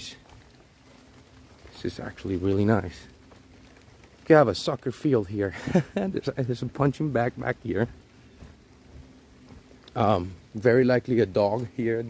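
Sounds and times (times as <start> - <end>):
soft footsteps on dirt: 0.0 - 12.0.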